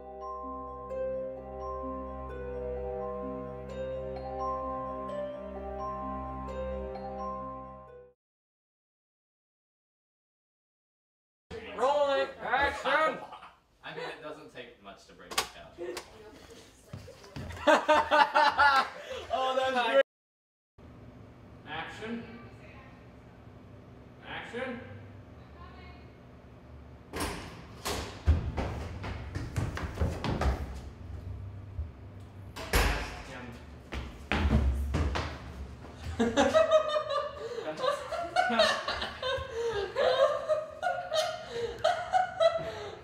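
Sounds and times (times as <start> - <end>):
door opening and banging shut: 27.1 - 28.8, 32.6 - 33.4.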